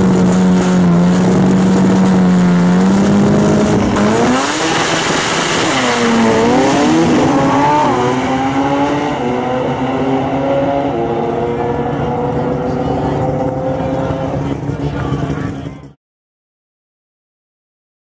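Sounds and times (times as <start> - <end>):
race car engine revving: 0.0 - 16.0.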